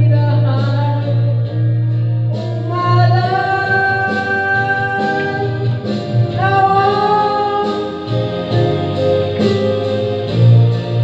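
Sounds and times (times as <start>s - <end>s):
steady low bass line: 0.0s - 11.0s.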